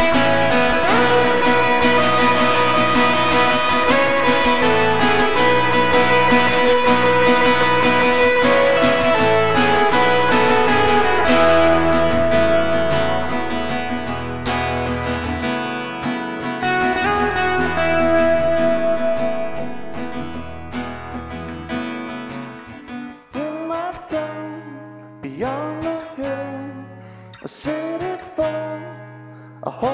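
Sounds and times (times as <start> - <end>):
person singing: 0.0 - 15.4, 16.6 - 21.3, 23.3 - 26.8
acoustic guitar picked melody: 0.0 - 29.9.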